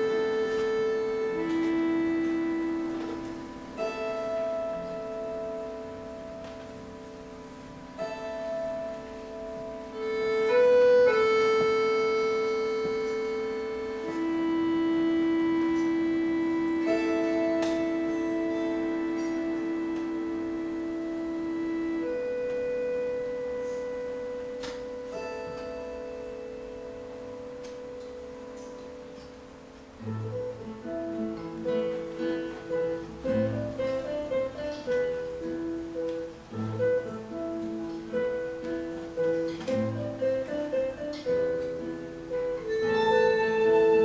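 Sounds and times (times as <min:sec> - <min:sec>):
folk orchestra playing sustained chords: 0:00.0 - 0:44.0.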